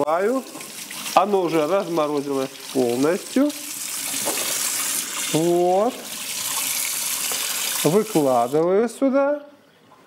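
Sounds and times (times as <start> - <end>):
kitchen tap running into sink: 0.0 - 8.8.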